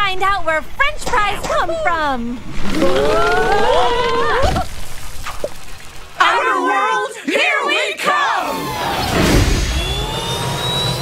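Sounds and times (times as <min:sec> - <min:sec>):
thin high whine: 0:08.4 - 0:11.0.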